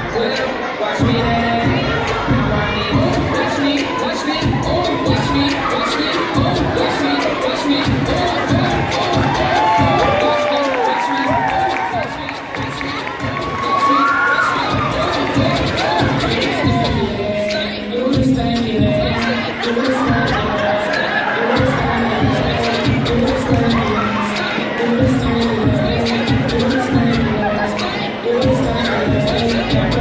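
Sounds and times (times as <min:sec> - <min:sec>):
audience cheering and shouting: 0:00.0 - 0:30.0
dance song with thumping beat: 0:00.0 - 0:30.0
audience cheering and screaming: 0:02.9 - 0:17.0.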